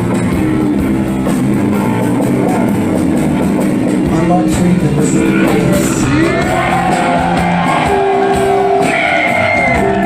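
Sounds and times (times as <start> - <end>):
bass: 0.0 - 10.0
drum kit with steady beat: 0.0 - 10.0
electric guitar: 0.0 - 10.0.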